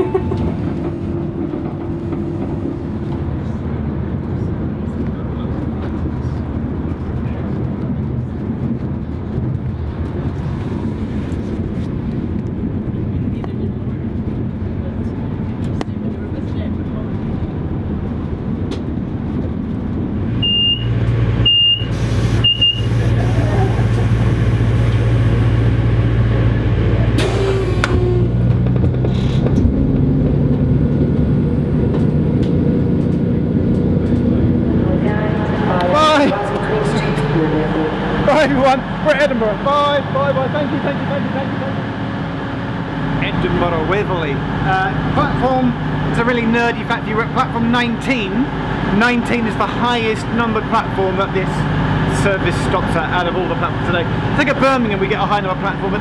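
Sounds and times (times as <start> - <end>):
diesel engine hum: 0.0 - 56.0
diesel train rumbling: 0.0 - 56.0.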